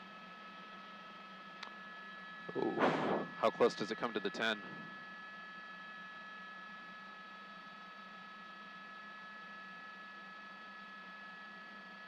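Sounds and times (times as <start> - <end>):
helicopter cabin hum: 2.5 - 5.1
high steady whining tones: 2.5 - 5.4.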